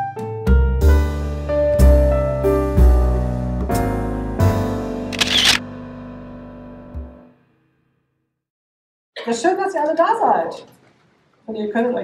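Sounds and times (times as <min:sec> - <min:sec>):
piano background music: 0:00.0 - 0:07.4
camera shutter click: 0:05.2 - 0:05.6.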